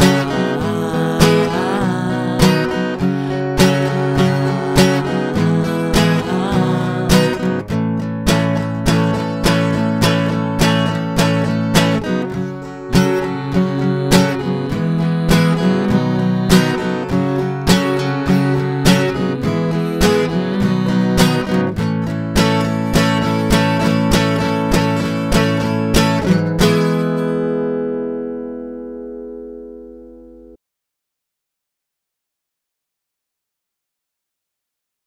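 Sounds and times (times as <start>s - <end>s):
acoustic guitar strumming: 0.0s - 30.6s.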